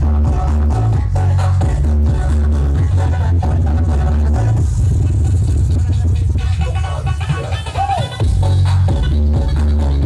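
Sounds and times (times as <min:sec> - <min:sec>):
loud electronic dance music: 0:00.0 - 0:10.0.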